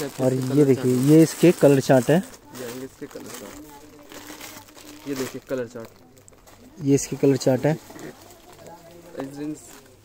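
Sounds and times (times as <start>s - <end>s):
person talking: 0.0s - 10.0s
plastic packaging crinkling: 0.0s - 10.0s.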